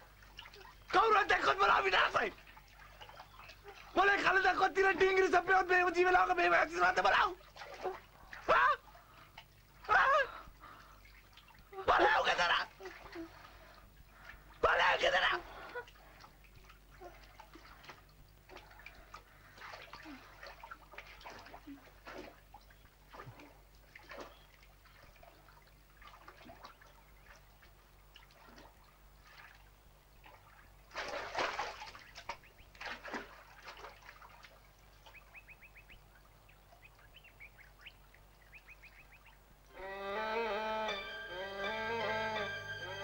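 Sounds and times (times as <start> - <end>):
water splashing and sloshing: 0.0 - 39.7
music: 39.7 - 43.0.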